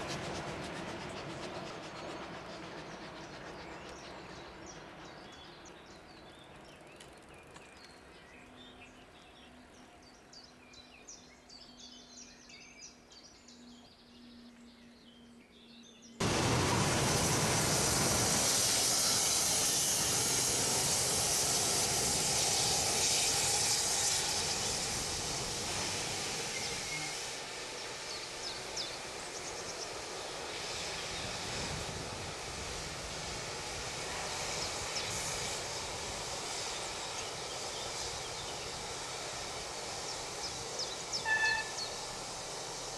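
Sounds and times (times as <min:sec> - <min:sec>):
diesel locomotive rushing: 0:00.0 - 0:11.4, 0:16.2 - 0:42.9.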